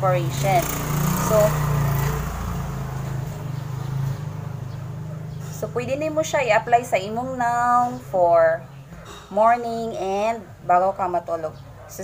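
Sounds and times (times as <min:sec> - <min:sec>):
vehicle engine droning: 0:00.0 - 0:09.0.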